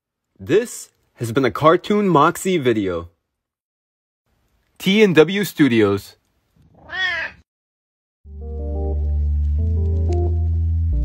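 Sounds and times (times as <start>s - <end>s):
cat meow: 6.7s - 7.5s.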